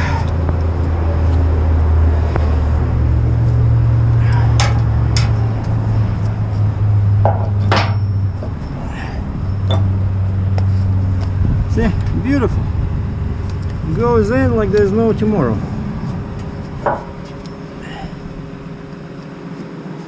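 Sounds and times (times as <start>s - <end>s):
diesel truck engine running: 0.0s - 20.0s
metallic clanks and knocks: 4.6s - 5.4s, 7.2s - 8.6s, 9.6s - 10.0s, 16.8s - 17.7s.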